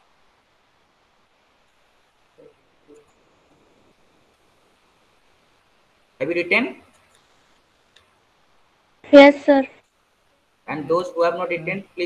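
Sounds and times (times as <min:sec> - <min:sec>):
faint ticks: 0:06.9 - 0:08.1.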